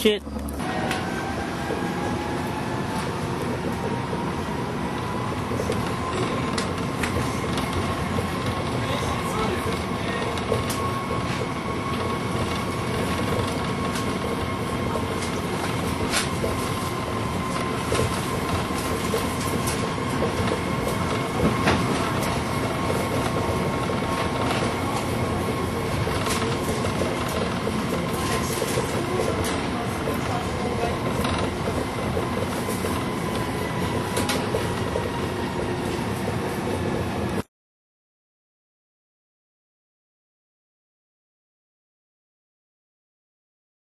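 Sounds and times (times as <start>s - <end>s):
train running noise: 0.0s - 37.5s
train wheels clicking on track: 0.5s - 37.4s.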